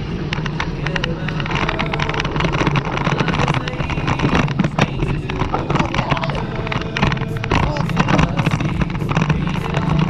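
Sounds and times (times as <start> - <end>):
bicycle rolling over gravel: 0.0 - 10.0
sharp rattling clicks: 0.3 - 10.0.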